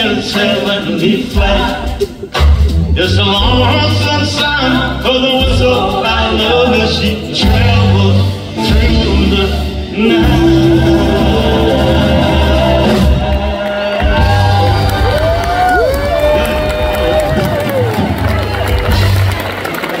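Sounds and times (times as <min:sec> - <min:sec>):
live band playing: 0:00.0 - 0:20.0
audience cheering and whooping: 0:12.4 - 0:20.0.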